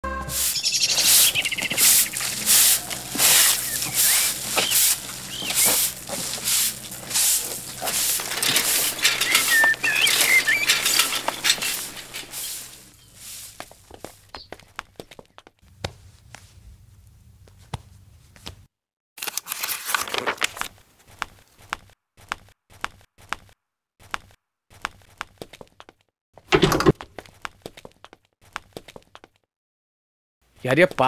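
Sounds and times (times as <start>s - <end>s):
birds chirping: 0.0s - 15.4s
rhythmic swishing: 0.2s - 12.9s
faint scattered clicks: 1.0s - 13.0s.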